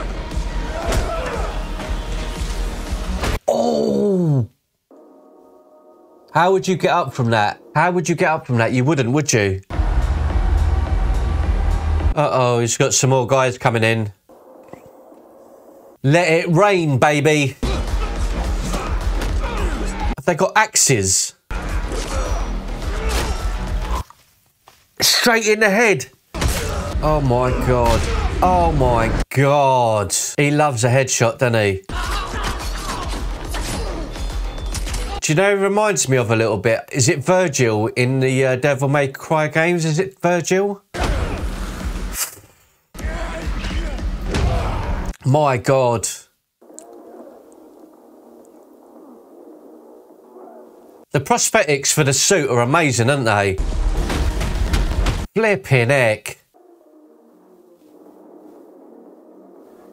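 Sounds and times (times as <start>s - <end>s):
muffled film soundtrack: 0.0s - 12.3s, 14.1s - 20.2s, 21.3s - 25.2s, 26.2s - 29.3s, 31.8s - 35.2s, 41.0s - 45.2s, 46.4s - 51.2s, 53.6s - 55.3s, 56.5s - 59.9s.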